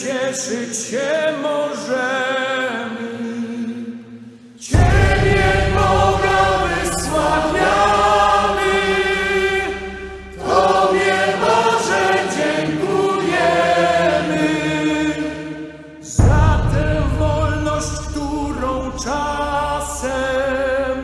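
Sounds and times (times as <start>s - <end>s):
large choir singing: 4.6s - 18.0s.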